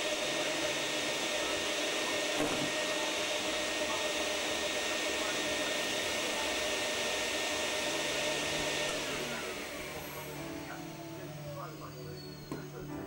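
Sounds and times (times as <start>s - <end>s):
vacuum cleaner motor whining: 0.0s - 13.0s.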